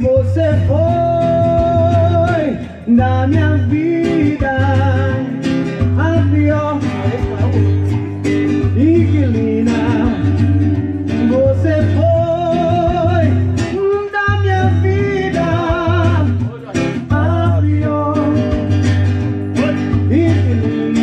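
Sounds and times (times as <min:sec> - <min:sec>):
acoustic guitar strumming: 0:00.0 - 0:21.0
man singing into a microphone: 0:00.0 - 0:21.0.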